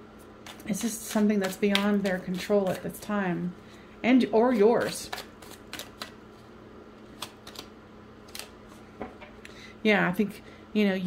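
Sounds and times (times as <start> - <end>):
faint steady hum: 0.0 - 11.0
cards being shuffled: 4.8 - 7.7.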